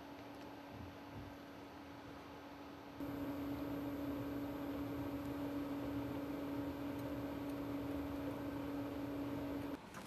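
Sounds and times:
equipment hum: 0.0s - 10.0s.

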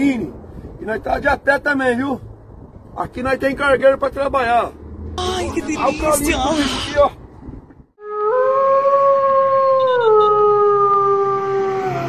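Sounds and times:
truck horn blast: 5.2s - 7.0s.

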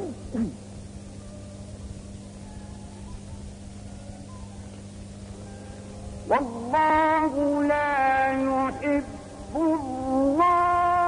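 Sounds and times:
electrical hum: 0.0s - 11.0s
tape hiss: 0.0s - 11.0s.

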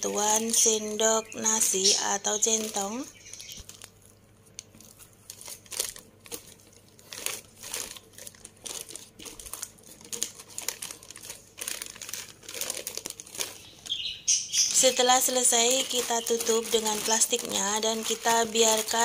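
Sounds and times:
plastic sheet crinkling: 0.0s - 19.0s.

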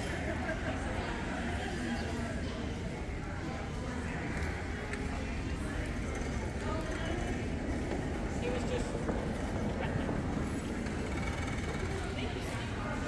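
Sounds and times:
distant people talking: 0.0s - 13.0s
low rumble of a hall: 0.0s - 13.0s.

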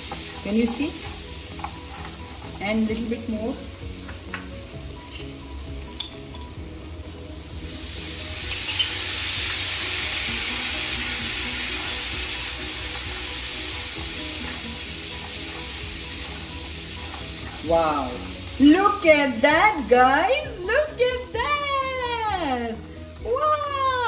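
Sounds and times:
spatula stirring in a pan: 0.0s - 3.3s, 10.4s - 18.6s
nuts frying in a pan: 0.0s - 24.0s
water sizzling in hot pan: 0.0s - 24.0s.

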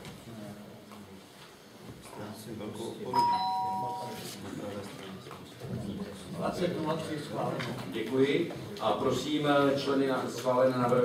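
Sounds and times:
electronic two-note chime: 3.2s - 4.2s.

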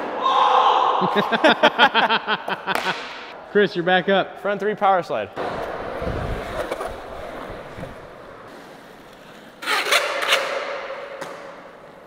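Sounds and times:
skateboard wheels rolling on concrete: 5.4s - 12.0s
skateboard wheels skidding: 5.4s - 12.0s.

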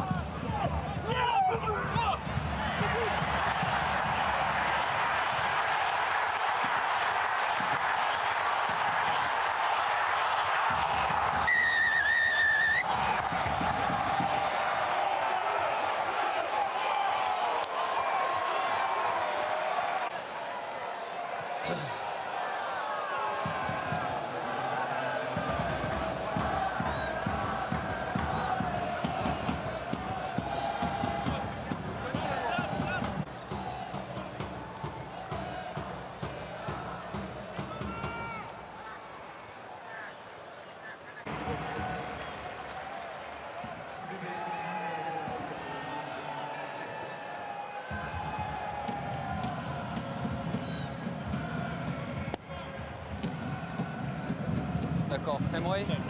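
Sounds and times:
stadium crowd cheering and chanting: 0.0s - 56.0s.

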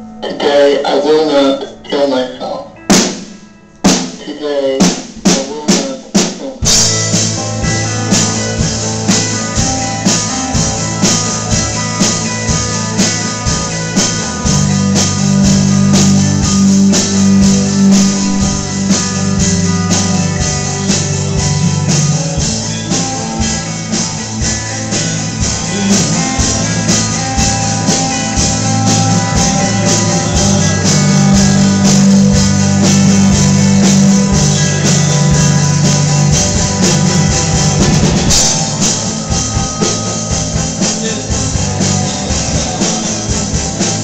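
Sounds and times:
person singing: 0.0s - 2.9s, 3.9s - 6.9s, 25.1s - 37.8s, 38.4s - 44.0s
live rock band playing: 0.0s - 44.0s
drum hits: 2.9s - 44.0s.

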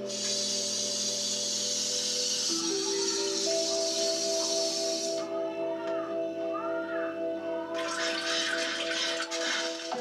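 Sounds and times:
running water hiss: 0.0s - 5.2s
soft music of held notes: 0.0s - 10.0s.

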